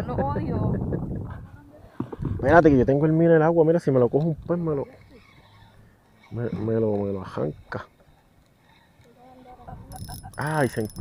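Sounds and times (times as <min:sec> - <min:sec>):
fishing reel clicking: 0:09.9 - 0:11.0.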